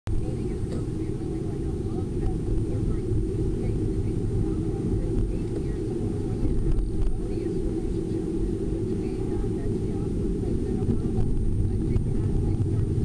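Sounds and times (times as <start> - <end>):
car engine and road rumble: 0.1 - 13.0
faint high whine: 0.1 - 13.0.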